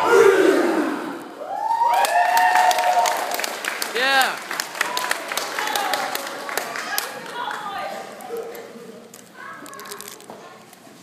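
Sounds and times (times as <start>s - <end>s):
group shouting: 0.0s - 1.1s
audience whooping and cheering: 1.4s - 6.2s
audience clapping: 1.9s - 8.2s.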